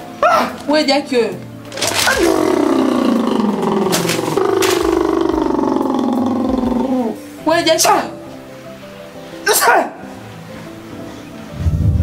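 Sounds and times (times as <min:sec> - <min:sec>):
person yelling: 0:09.5 - 0:10.0.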